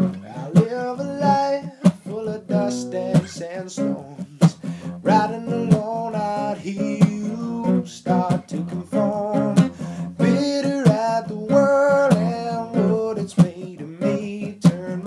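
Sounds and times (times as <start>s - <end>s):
acoustic guitar strumming: 0.0s - 15.0s
man singing: 0.0s - 15.0s.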